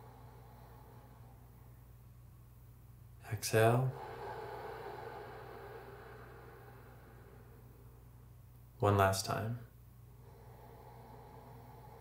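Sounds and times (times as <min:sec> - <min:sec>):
slow exhale through nose: 0:00.0 - 0:01.8, 0:03.9 - 0:08.4, 0:10.2 - 0:12.0
low hum: 0:00.0 - 0:08.8.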